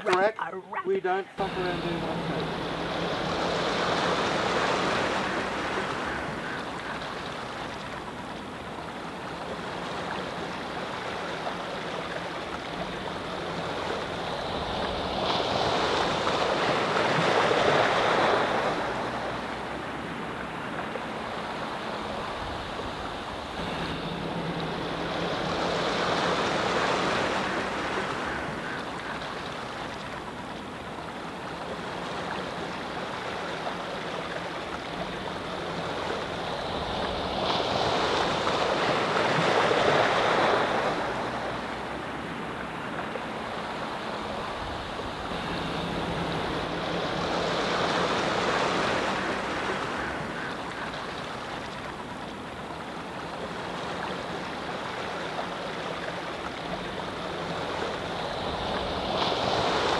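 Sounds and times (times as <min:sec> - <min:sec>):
rushing outdoor ambient noise: 0:00.0 - 0:59.9.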